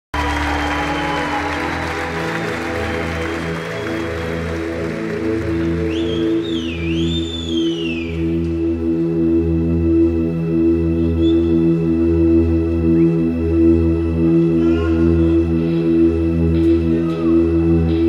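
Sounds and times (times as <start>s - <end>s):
audience applause: 0.1s - 8.0s
pulsing synth bass pattern: 2.8s - 18.0s.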